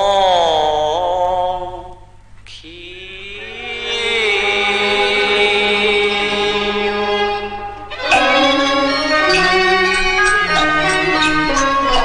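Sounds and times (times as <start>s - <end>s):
opera singing long held note: 2.6s - 12.0s.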